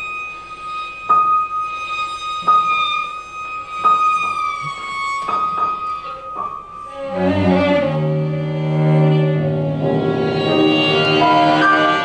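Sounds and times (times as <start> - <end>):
violin holding high note: 9.3 - 12.0.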